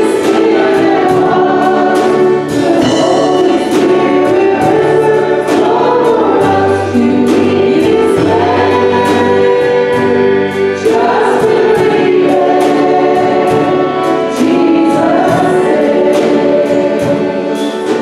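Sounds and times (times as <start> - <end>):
drum kit beat: 0.0 - 18.0
group singing gospel song: 0.0 - 18.0.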